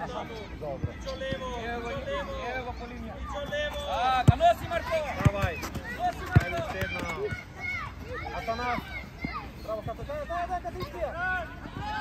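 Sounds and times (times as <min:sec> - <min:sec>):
children shouting and calling: 0:02.1 - 0:12.0.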